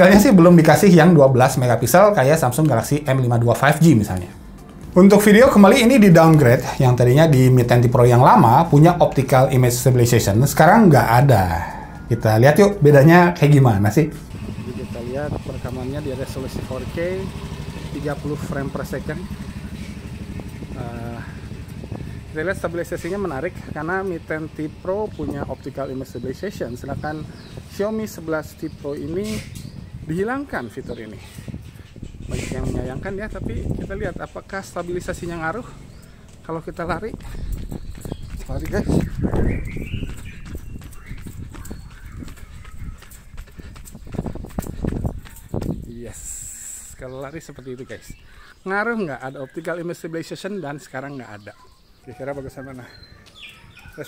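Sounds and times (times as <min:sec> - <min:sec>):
running footsteps on asphalt: 0:02.6 - 0:06.6, 0:14.1 - 0:46.0, 0:51.8 - 0:54.0
vehicle engine idling: 0:14.1 - 0:32.2.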